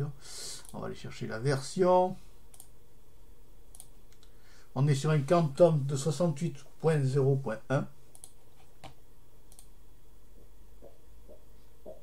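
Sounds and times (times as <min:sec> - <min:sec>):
faint background hum: 0:00.0 - 0:12.0
computer mouse clicks: 0:02.5 - 0:02.7, 0:03.7 - 0:04.3, 0:08.1 - 0:09.7.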